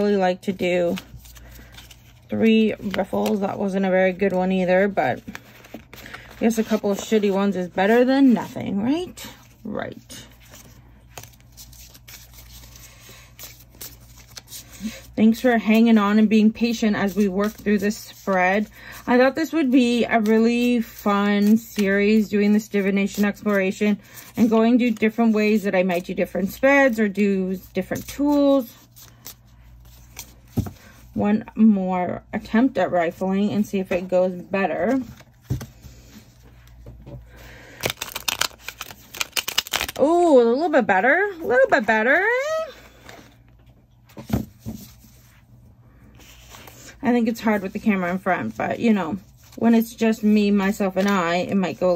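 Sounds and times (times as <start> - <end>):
cards riffle shuffled: 37.8 - 40.0.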